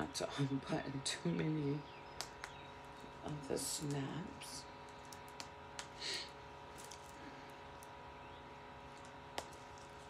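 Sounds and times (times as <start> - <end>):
sharp snap pop: 2.2 - 2.6.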